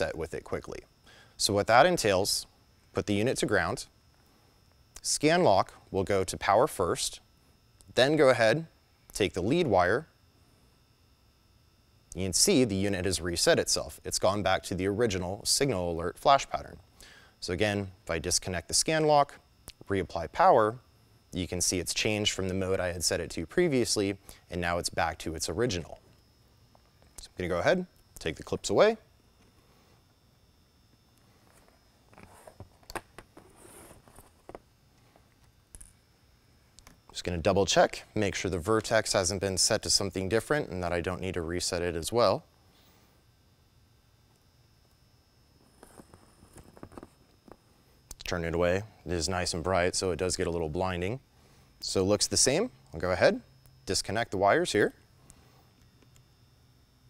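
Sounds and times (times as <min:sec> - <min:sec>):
faint high-pitched hum: 0:00.0 - 0:57.0.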